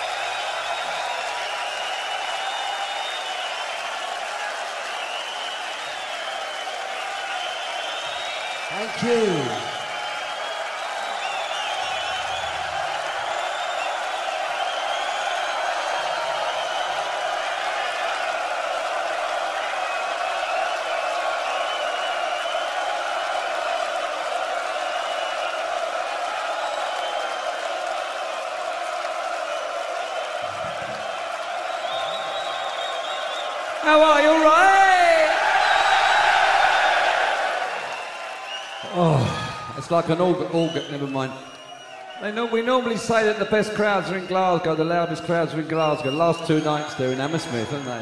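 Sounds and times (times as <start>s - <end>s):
crowd cheering and chanting: 0.0s - 48.0s.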